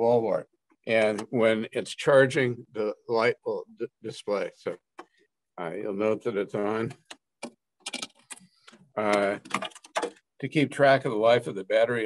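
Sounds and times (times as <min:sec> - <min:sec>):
light clicks and taps: 0:07.9 - 0:10.1.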